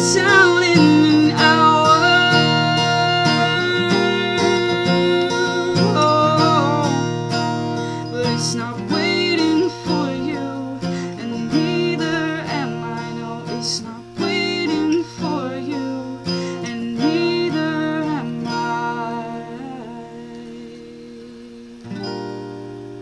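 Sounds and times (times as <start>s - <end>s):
person singing: 0.0s - 22.5s
strummed acoustic guitar: 0.0s - 23.0s.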